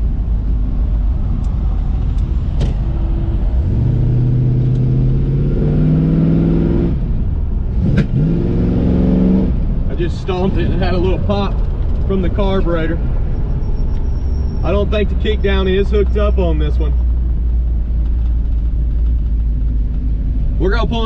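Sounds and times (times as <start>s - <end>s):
car engine at full throttle: 0.0s - 21.0s.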